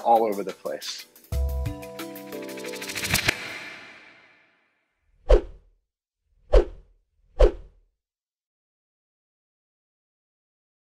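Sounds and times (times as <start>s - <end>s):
whoosh sound effects: 2.6s - 4.5s.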